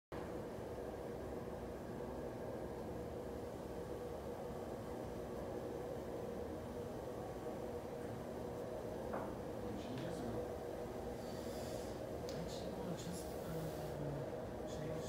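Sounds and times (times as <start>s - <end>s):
projector screen motor humming: 0.2s - 15.0s.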